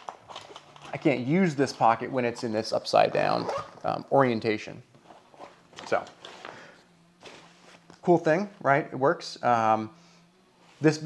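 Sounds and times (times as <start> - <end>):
backpack rustling: 5.0 - 8.0.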